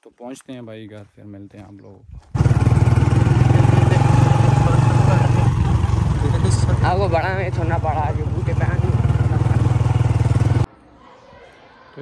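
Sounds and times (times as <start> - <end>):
motorcycle engine running: 2.3 - 10.7.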